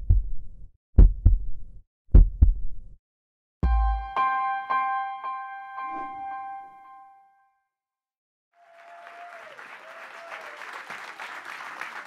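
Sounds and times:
heartbeat thumps: 0:00.0 - 0:03.0.

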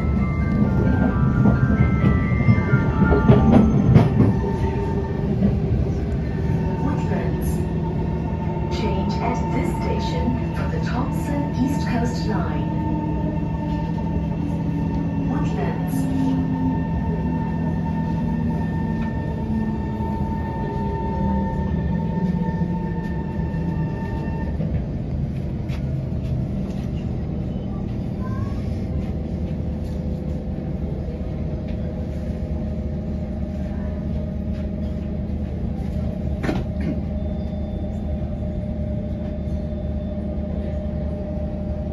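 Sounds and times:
stopped train humming: 0:00.0 - 0:41.9.

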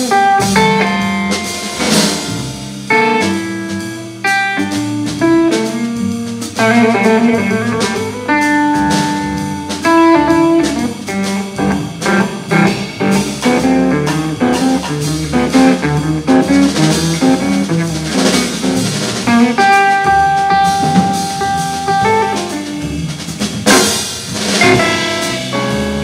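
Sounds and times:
drum kit: 0:00.0 - 0:26.0
electric guitar: 0:00.0 - 0:26.0
plucked double bass: 0:04.7 - 0:26.0.

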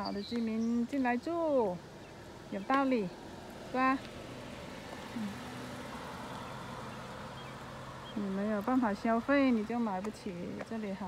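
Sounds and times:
low motor hum: 0:00.0 - 0:11.0
outdoor background noise: 0:00.0 - 0:11.0.

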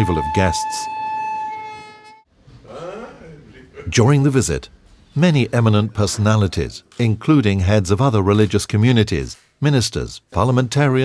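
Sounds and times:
train horn: 0:00.0 - 0:02.2.

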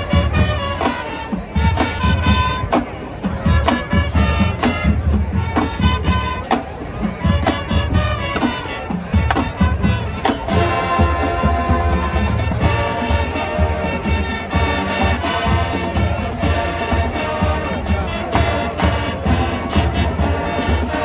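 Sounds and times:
drumline strokes: 0:00.0 - 0:21.0
marching band playing: 0:00.0 - 0:21.0
sustained horn chords: 0:07.9 - 0:21.0.

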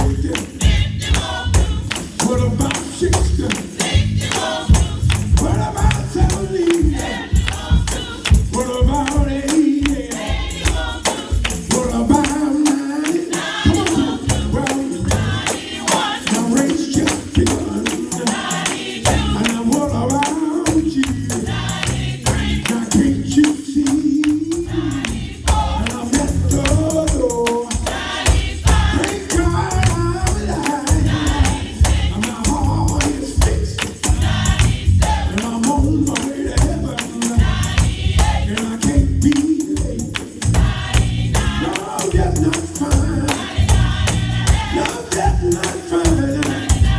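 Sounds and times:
low bass accompaniment: 0:00.0 - 0:10.8, 0:19.1 - 0:28.0, 0:28.6 - 0:46.9
gospel choir singing: 0:00.0 - 0:46.9
hands clapping a beat: 0:00.0 - 0:46.9
tambourine shaking: 0:00.0 - 0:46.9.

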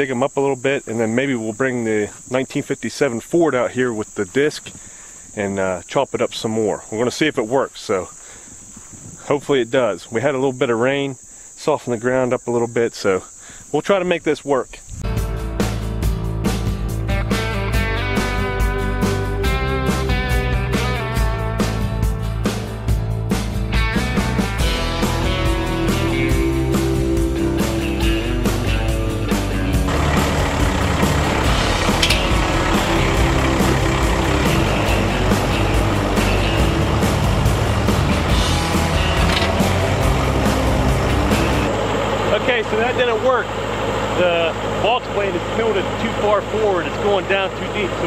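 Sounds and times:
strummed guitar music: 0:15.1 - 0:43.7
tractor diesel engine running: 0:24.2 - 0:48.0
man's voice: 0:42.3 - 0:43.5, 0:44.2 - 0:48.0.

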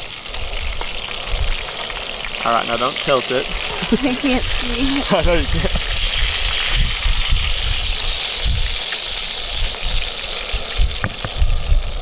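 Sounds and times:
fish sizzling in a frying pan: 0:00.0 - 0:12.0
wind rumbling on microphone: 0:00.3 - 0:02.4, 0:03.4 - 0:12.0.

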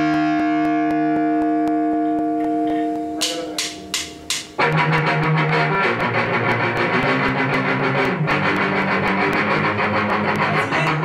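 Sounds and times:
electric guitar chord ringing: 0:00.0 - 0:11.0
rock band playing: 0:00.0 - 0:11.0.

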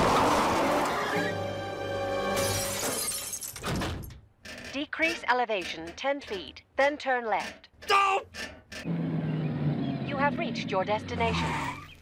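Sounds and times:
cartoon background music: 0:00.6 - 0:02.4.

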